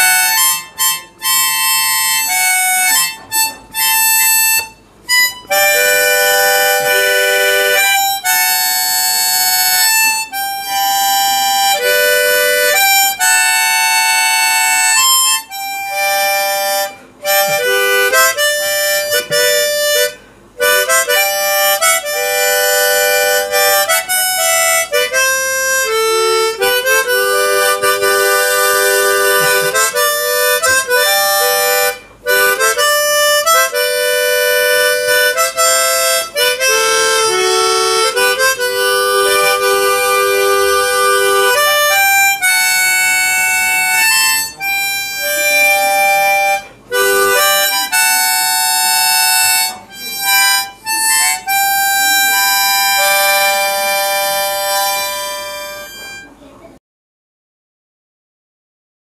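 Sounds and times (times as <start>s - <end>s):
harmonica playing slow melody: 0.0s - 56.4s.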